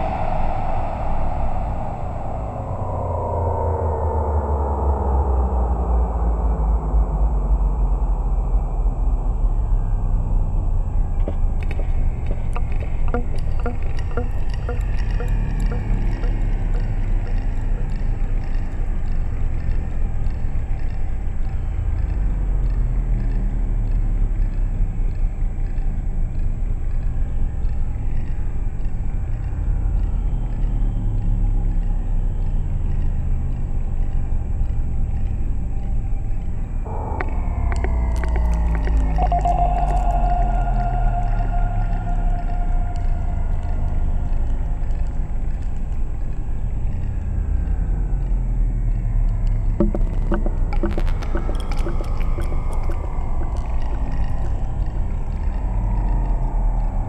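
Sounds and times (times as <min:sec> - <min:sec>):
deep synthesizer drone: 0:00.0 - 0:57.0
faint high ticks: 0:11.2 - 0:57.0
mid-pitched synthesizer tone: 0:11.8 - 0:19.3, 0:36.8 - 0:45.2, 0:49.8 - 0:55.8.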